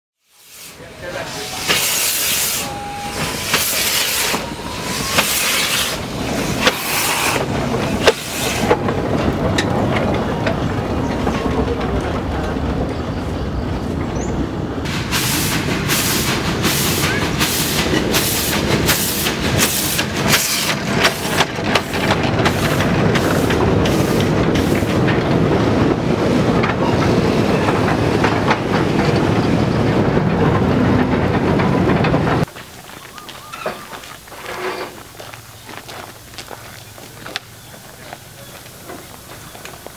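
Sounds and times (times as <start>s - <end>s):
hiss of escaping steam: 0.2s - 8.7s, 14.9s - 25.0s
steam locomotive passing: 0.2s - 39.9s
wagons rolling rumble: 2.6s - 39.9s.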